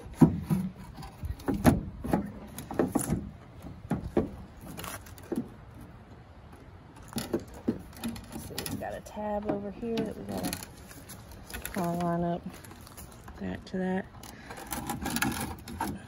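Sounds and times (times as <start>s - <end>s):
plastic rubbing: 0.0s - 16.0s.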